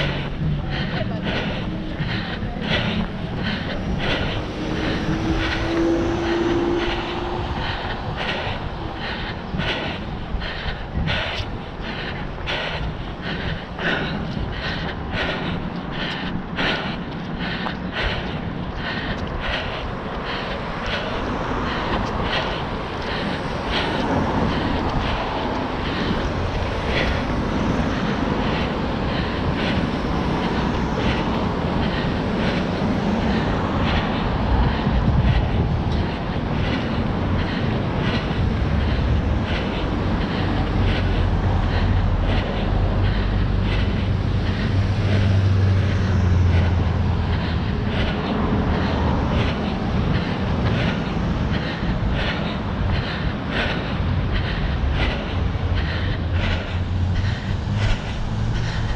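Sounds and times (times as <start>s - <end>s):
running footsteps on asphalt: 0.0s - 58.9s
wind rumble on microphone: 0.0s - 58.9s.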